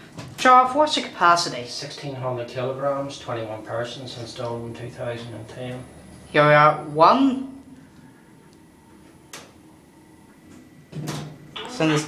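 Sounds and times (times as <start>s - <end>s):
high electrical whine: 0.0s - 12.0s.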